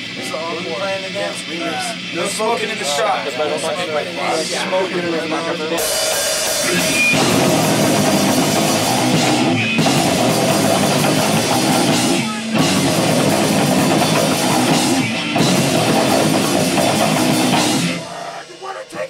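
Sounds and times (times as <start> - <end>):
distorted electric guitar: 0.0 - 19.0
pounding drum kit: 5.6 - 19.0
shouted vocals: 11.2 - 15.2.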